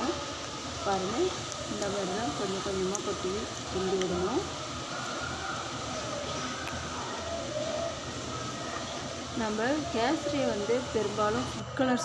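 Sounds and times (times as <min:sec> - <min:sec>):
woman speaking: 0:00.0 - 0:00.2, 0:00.8 - 0:04.5, 0:09.4 - 0:12.0.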